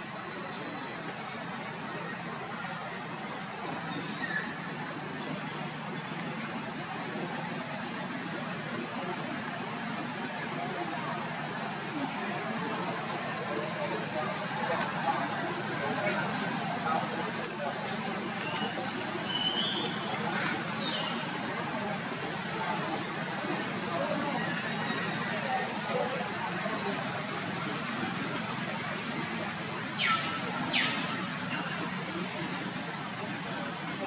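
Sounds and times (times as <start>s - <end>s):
faint indistinct voices: 0.0s - 34.0s
outdoor background noise: 0.0s - 34.0s.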